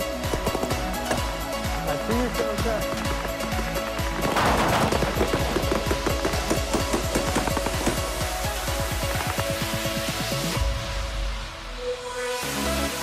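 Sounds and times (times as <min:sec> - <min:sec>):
electronic music: 0:00.0 - 0:13.0.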